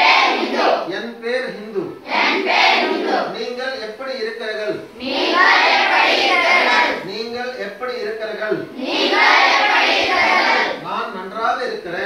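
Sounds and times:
students reciting in unison: 0.0s - 0.9s, 2.0s - 3.4s, 4.8s - 7.1s, 8.6s - 10.9s.

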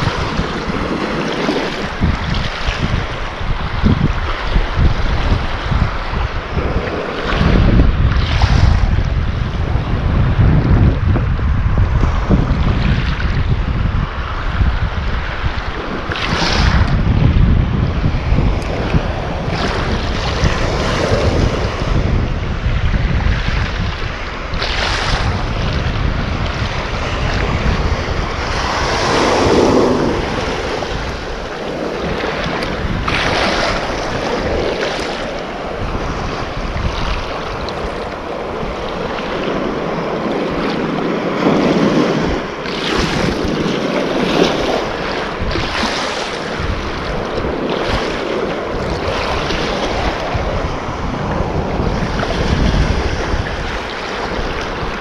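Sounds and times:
waves breaking over rocks: 0.0s - 55.0s
wind buffeting microphone: 0.0s - 55.0s.

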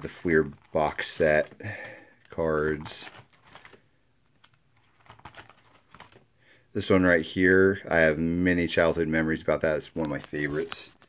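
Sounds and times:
plastic binder pages rustling: 0.0s - 6.3s, 9.8s - 11.0s.

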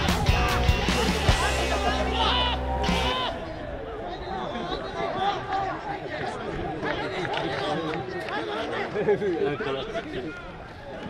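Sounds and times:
men calling and shouting: 0.0s - 11.0s.

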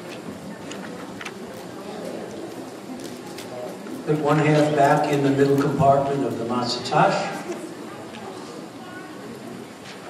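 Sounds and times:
murmur of many people: 0.0s - 10.0s.

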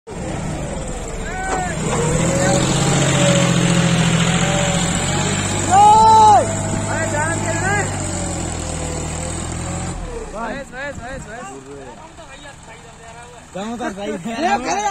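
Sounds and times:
tractor diesel engine under load: 0.1s - 14.9s
people shouting: 1.2s - 3.1s, 4.4s - 8.2s.

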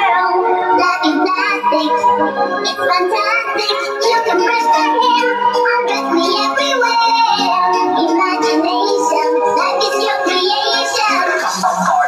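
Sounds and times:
house music: 0.0s - 12.0s.

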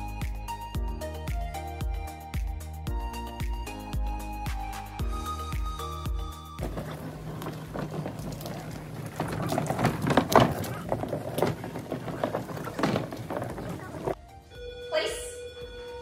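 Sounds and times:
music: 0.0s - 8.7s, 13.8s - 16.0s
garbage cart rolling over asphalt: 5.1s - 14.4s.

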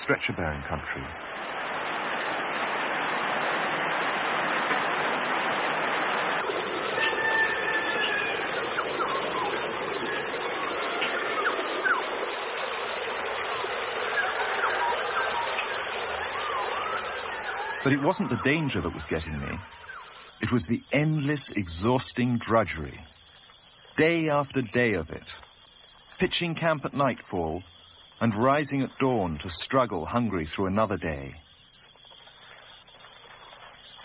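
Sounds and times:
waterfall rushing: 0.0s - 19.9s
whistled bird calls: 6.9s - 12.5s, 13.4s - 20.4s.

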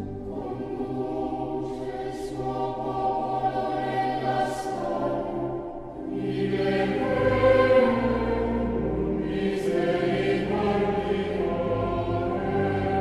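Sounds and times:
choir singing sustained chords: 0.0s - 13.0s.

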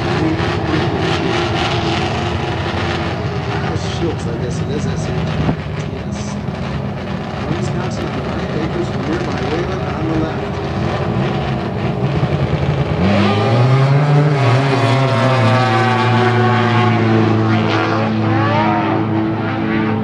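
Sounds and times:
motorcycle engine at full throttle: 0.0s - 20.0s.

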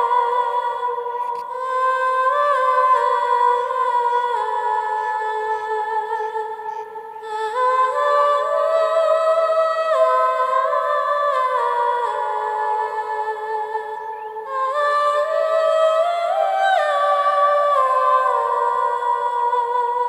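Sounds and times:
high voice humming melody: 0.0s - 20.0s.

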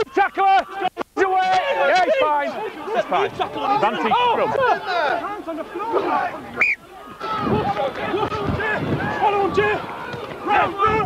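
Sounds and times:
men shouting calls: 0.0s - 11.0s.

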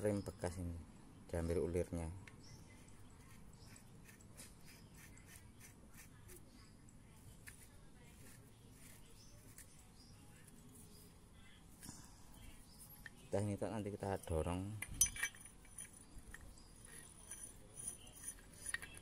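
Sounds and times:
faint clicks of small metal parts: 14.8s - 19.0s.

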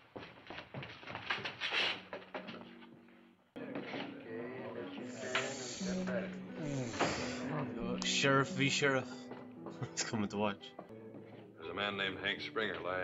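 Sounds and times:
footsteps: 0.0s - 13.0s
background music: 2.2s - 13.0s
crowd chatter: 3.6s - 9.0s.

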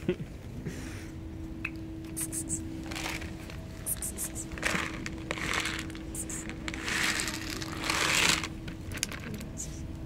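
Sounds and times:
kibble pouring onto paving stones: 4.5s - 9.3s.

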